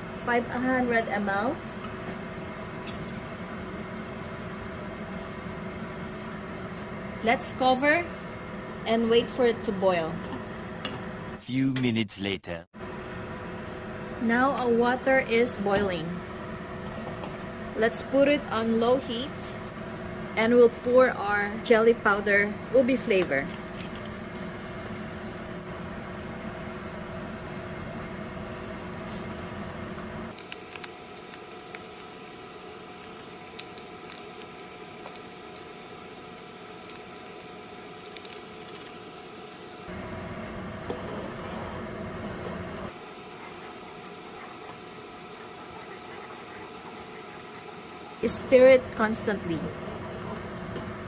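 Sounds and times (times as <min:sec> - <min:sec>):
steady background hum: 0:00.0 - 0:51.0
water boiling in saucepan: 0:01.6 - 0:05.0, 0:28.0 - 0:40.3, 0:40.9 - 0:50.6
faint powder pouring ticks: 0:33.0 - 0:39.8.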